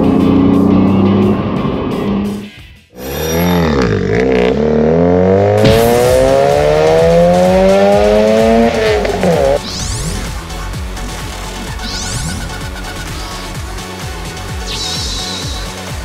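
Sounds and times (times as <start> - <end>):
car engine revving: 0.0 - 11.3.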